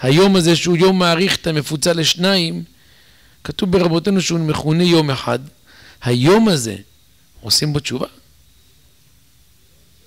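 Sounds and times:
man speaking: 0.0s - 2.7s, 3.4s - 8.2s.

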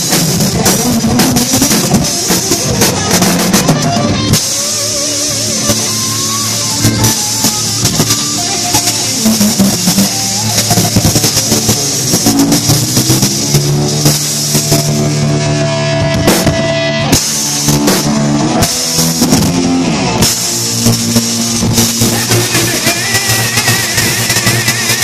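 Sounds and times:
bass guitar: 0.0s - 25.0s
cymbals: 0.0s - 25.0s
drum hits: 0.0s - 25.0s
electric guitar: 0.0s - 25.0s.

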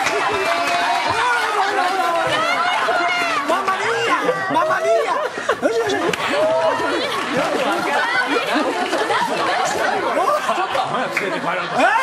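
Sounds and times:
overlapping voices: 0.0s - 12.0s.

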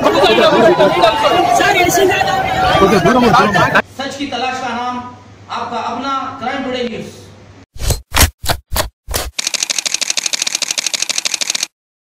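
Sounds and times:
rapid burst of shutter clicks: 9.2s - 11.8s
camera shutter clicks: 9.4s - 11.7s.

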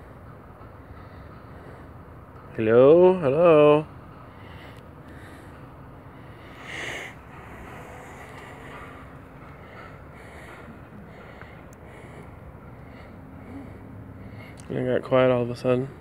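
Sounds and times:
person breathing: 4.3s - 14.7s.

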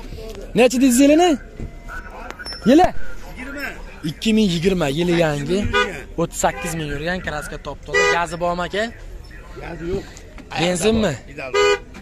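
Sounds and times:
men calling out: 0.8s - 11.8s
car horn toot: 1.7s - 8.6s, 11.4s - 12.0s.

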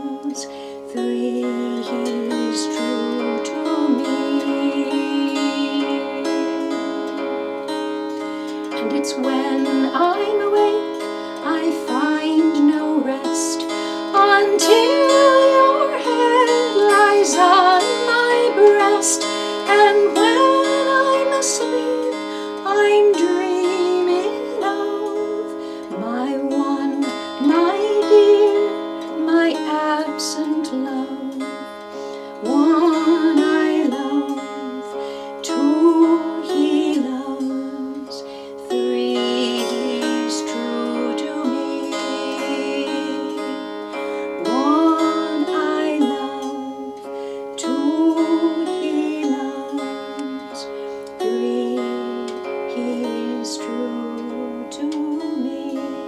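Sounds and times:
mountain dulcimer playing: 0.0s - 56.0s.

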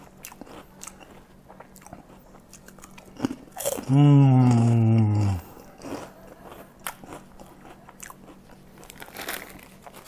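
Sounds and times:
crunching and chewing cracker: 0.0s - 10.0s.

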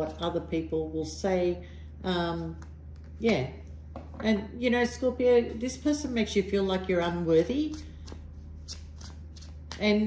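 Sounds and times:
cards being shuffled: 7.7s - 10.0s.

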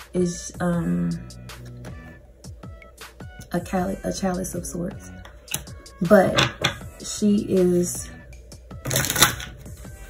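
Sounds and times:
cards being shuffled: 8.8s - 9.6s.

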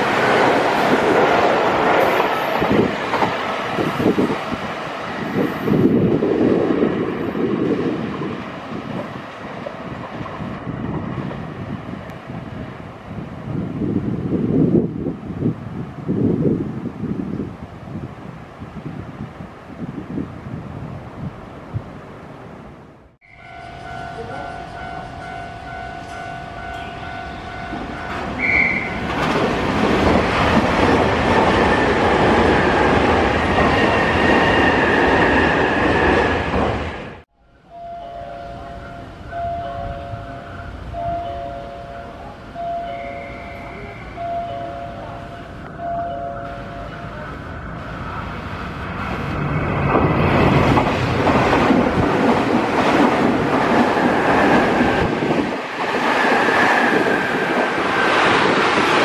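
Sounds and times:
train passing over crossing: 0.0s - 59.0s
train rushing through platform: 0.0s - 59.0s
crossing bell ringing: 23.2s - 29.3s, 37.5s - 47.4s
two-tone station chime: 37.6s - 47.0s.

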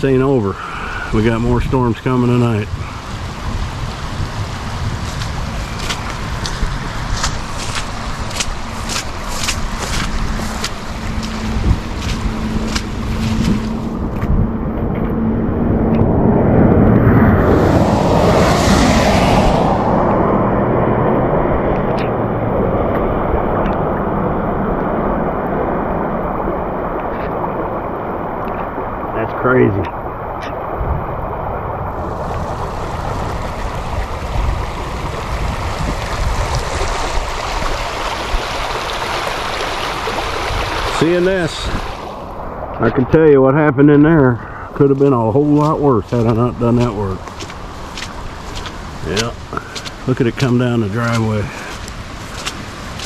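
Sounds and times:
running floodwater: 0.0s - 16.2s, 17.0s - 53.0s
wind buffeting microphone: 0.0s - 53.0s
louder rush: 8.9s - 23.6s
steady rain: 23.3s - 42.4s, 44.2s - 53.0s.

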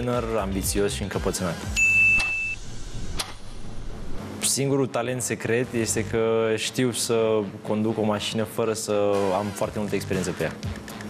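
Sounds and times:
high electronic beep: 1.8s - 2.7s.

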